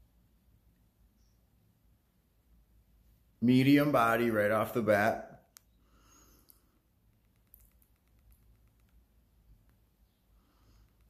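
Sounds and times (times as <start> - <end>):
soft clicks: 5.4 - 5.8, 6.4 - 10.0, 10.7 - 11.0.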